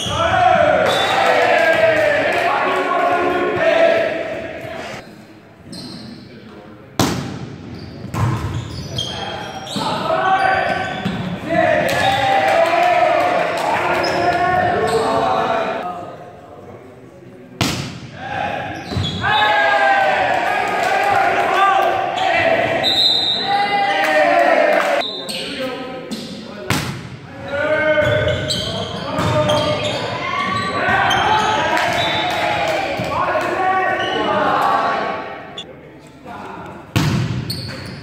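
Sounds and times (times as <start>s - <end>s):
voices shouting and cheering: 0.0s - 5.0s, 8.8s - 16.0s, 18.2s - 25.7s, 27.3s - 35.6s
volleyball being hit: 17.6s - 18.1s.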